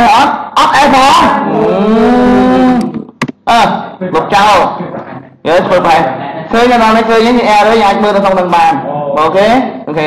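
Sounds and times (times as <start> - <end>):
man speaking: 3.4 - 10.0.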